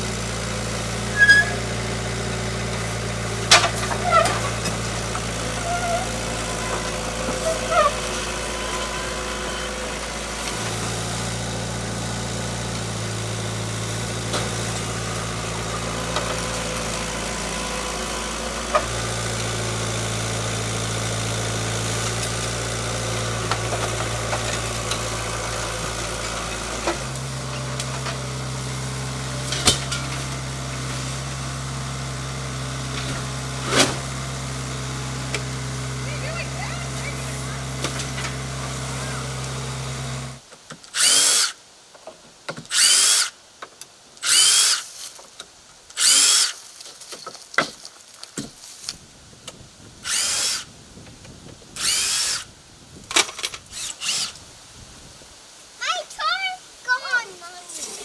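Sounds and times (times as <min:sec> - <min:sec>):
skid steer engine running: 0:00.0 - 0:41.6, 0:45.9 - 0:46.8, 0:48.1 - 0:54.4
knocks and clanks: 0:03.4 - 0:05.2.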